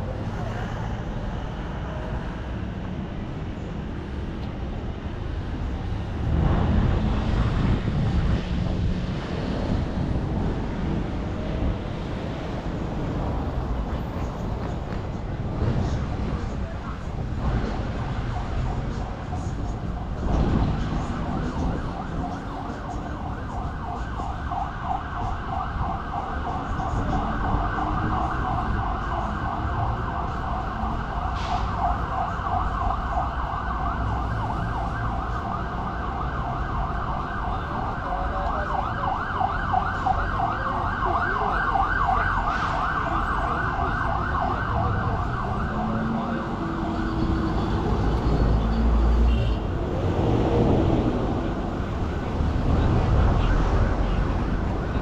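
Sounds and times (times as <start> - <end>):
low traffic rumble: 0.0 - 55.0
emergency siren yelping: 18.2 - 49.4.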